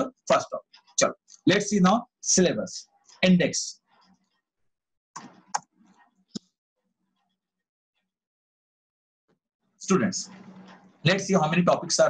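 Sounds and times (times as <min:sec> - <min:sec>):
computer mouse clicks: 0:05.2 - 0:06.5.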